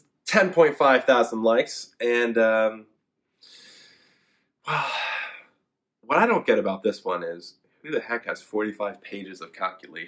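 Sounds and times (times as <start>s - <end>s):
man sighing: 4.7s - 5.5s.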